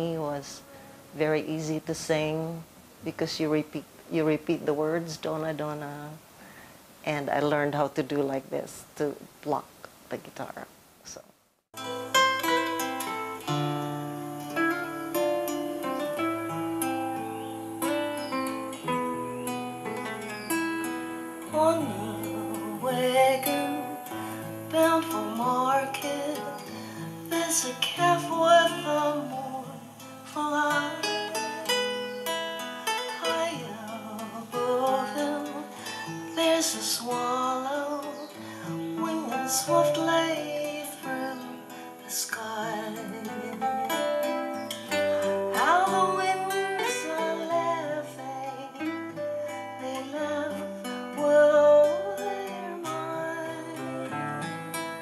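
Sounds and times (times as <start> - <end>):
classical guitars strummed and plucked: 11.8 - 55.0
person singing: 21.4 - 32.2, 33.0 - 55.0.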